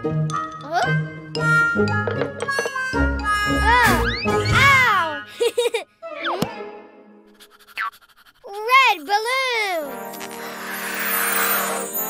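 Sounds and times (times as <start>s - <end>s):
children's background music: 0.0s - 7.2s, 8.6s - 10.2s
balloon rocket whoosh: 10.0s - 12.0s
rising and falling whistling glides: 10.6s - 12.0s.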